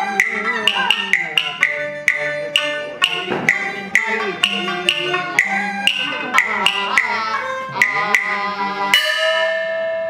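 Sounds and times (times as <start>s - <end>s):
melodic instruments: 0.0s - 10.0s
metal percussion strikes: 0.0s - 10.0s.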